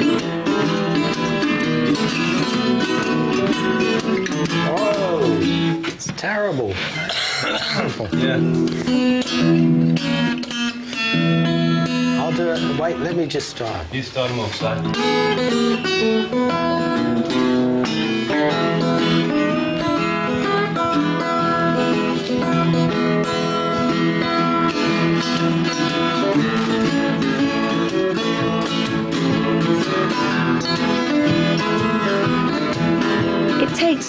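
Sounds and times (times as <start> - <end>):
acoustic guitars playing: 0.0 - 34.0.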